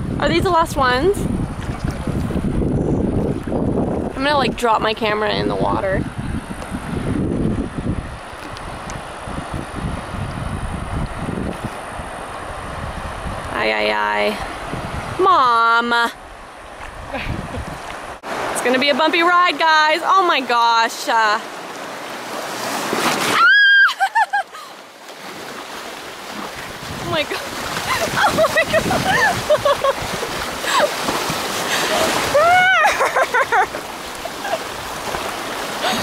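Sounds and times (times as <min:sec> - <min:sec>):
wind buffeting microphone: 0:00.0 - 0:20.5, 0:26.2 - 0:36.0
river water rushing over rapids: 0:16.2 - 0:36.0
woman screaming and yelping: 0:23.3 - 0:24.7, 0:27.9 - 0:29.6, 0:31.9 - 0:33.3.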